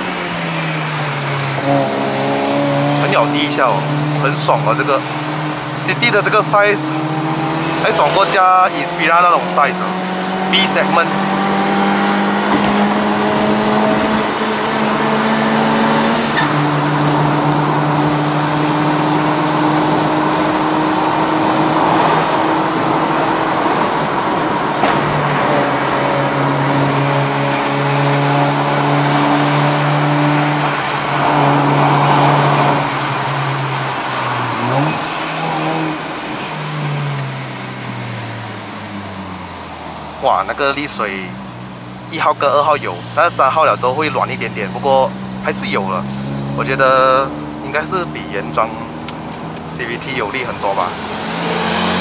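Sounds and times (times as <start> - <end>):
car engine pulling at high revs: 0.0 - 52.0.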